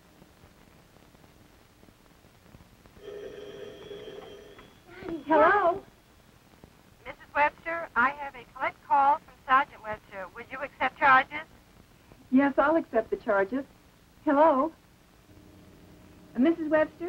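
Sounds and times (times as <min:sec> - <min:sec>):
telephone ringing: 0:03.0 - 0:06.0
voices on phone line: 0:03.0 - 0:06.0, 0:07.0 - 0:11.5, 0:16.3 - 0:17.0.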